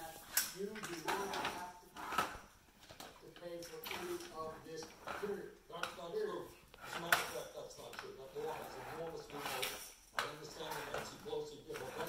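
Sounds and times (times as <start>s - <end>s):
quiet voices: 3.0s - 12.0s.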